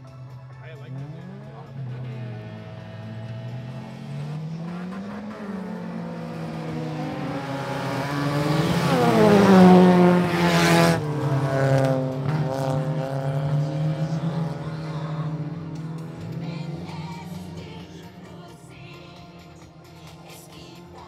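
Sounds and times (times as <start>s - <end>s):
race car engines revving: 0.0s - 21.0s.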